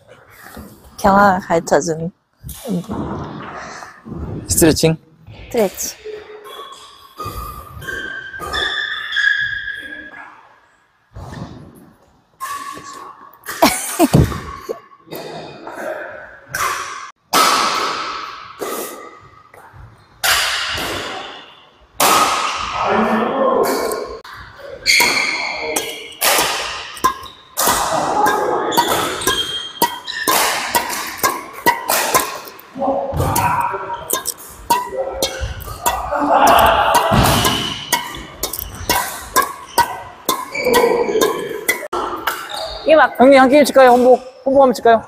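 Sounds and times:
rackets striking shuttlecock: 24.8 - 42.7.

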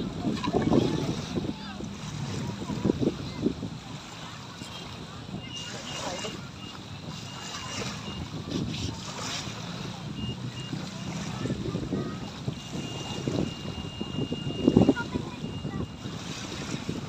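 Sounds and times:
small waves lapping on shore: 0.0 - 17.0
wind buffeting microphone: 0.0 - 17.0.

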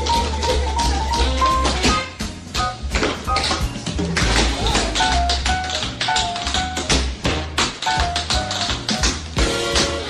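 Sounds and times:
jazz music: 0.0 - 10.0
tap shoes striking: 1.2 - 9.9.

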